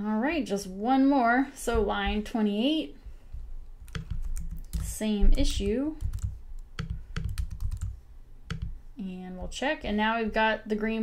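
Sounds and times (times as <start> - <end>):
computer keyboard typing: 3.8 - 8.8.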